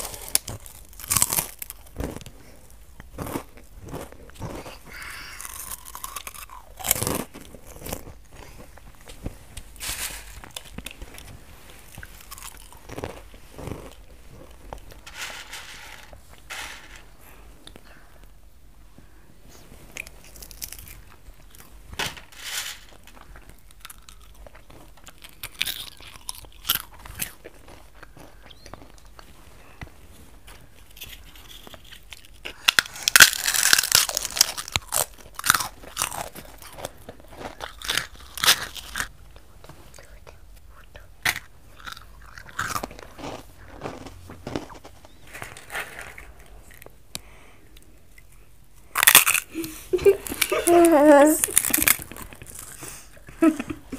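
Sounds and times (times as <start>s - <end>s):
people crunching dry snacks: 0.0s - 18.0s, 20.0s - 53.9s.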